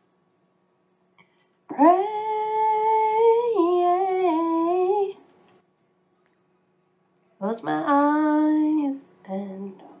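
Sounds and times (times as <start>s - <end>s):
woman singing long note: 1.7s - 5.2s.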